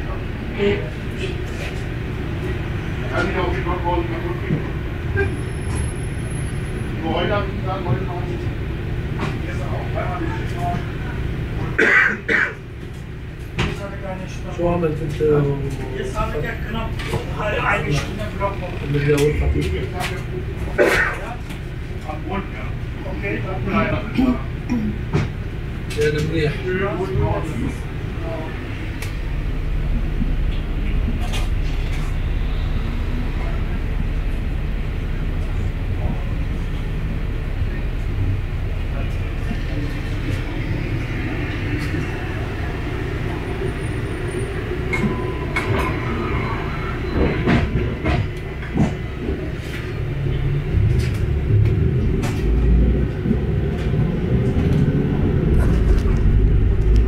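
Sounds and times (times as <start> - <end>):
bus engine and road rumble: 0.0 - 57.0.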